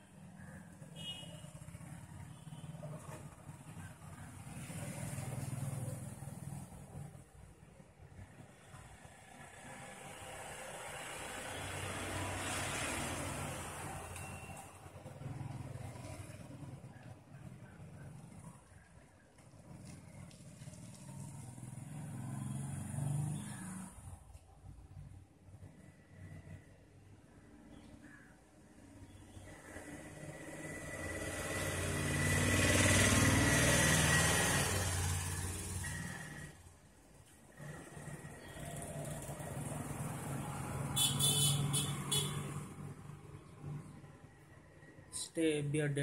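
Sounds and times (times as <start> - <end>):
vehicle engine humming: 37.4 - 44.4.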